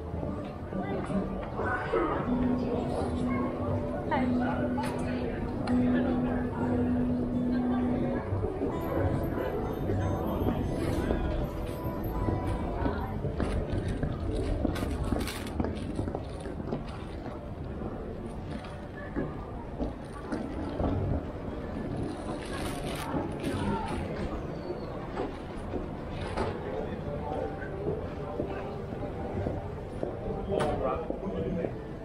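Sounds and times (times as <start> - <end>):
chatter of passers-by: 0.0 - 32.0
footsteps on paving: 12.3 - 17.4.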